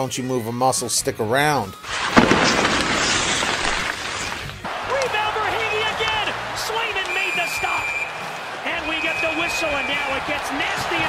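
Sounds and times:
hockey skate ice spray scrape: 0:01.8 - 0:04.7
arena crowd: 0:04.6 - 0:11.0
referee's whistle: 0:05.3 - 0:06.0, 0:06.8 - 0:10.5.

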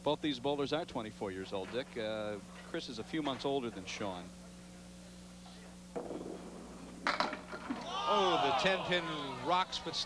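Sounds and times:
bowling ball rolling on lane: 0:05.9 - 0:07.9.

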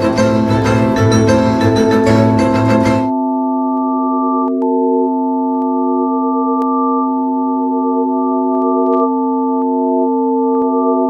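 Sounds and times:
electronic sine tone chord: 0:03.0 - 0:11.0.

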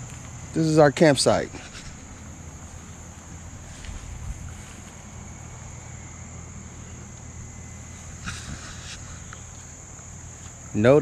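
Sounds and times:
crickets chirping: 0:00.0 - 0:11.0
wind rumble on microphone: 0:03.4 - 0:04.8.

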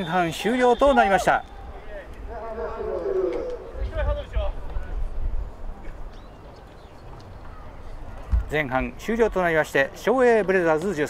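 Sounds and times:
distant voices calling out: 0:00.0 - 0:05.1.

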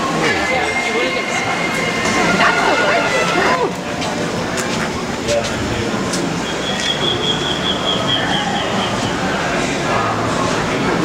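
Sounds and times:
steady high-pitched squeal: 0:00.0 - 0:04.6
constant background din: 0:00.0 - 0:11.0.

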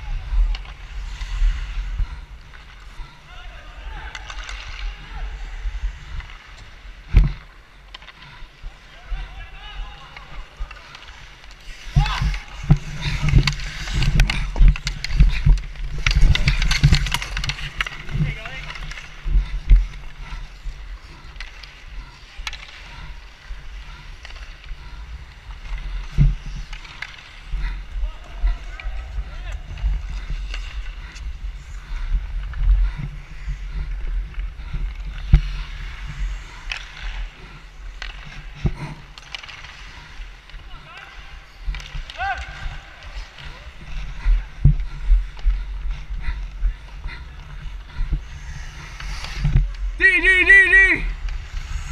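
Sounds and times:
skates scraping on ice: 0:00.0 - 0:51.9
hockey sticks and puck clacking: 0:00.1 - 0:51.9
players calling out: 0:50.0 - 0:51.2.

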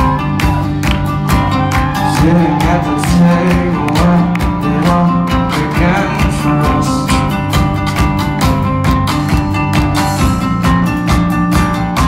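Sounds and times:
bass: 0:00.0 - 0:12.0
drums steady beat: 0:00.0 - 0:12.0
strummed acoustic guitar: 0:00.0 - 0:12.0.

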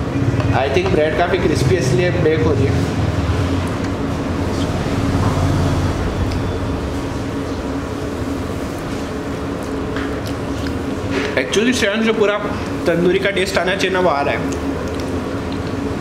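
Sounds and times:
low rumble with drone: 0:00.0 - 0:11.1.

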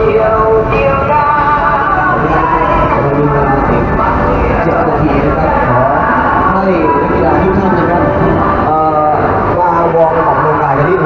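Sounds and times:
crowd calling and cheering: 0:00.0 - 0:11.0.

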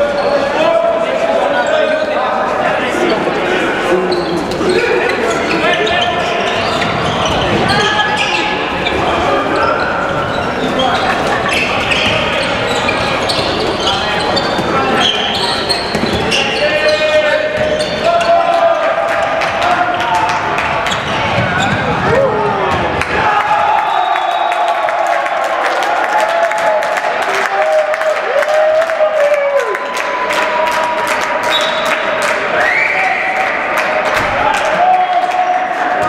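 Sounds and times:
ball bouncing on court: 0:20.3 - 0:23.1.

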